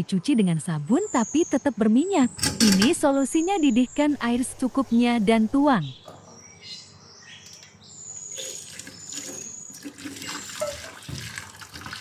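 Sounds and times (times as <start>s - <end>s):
water pouring and splashing into bowl: 8.4s - 12.0s.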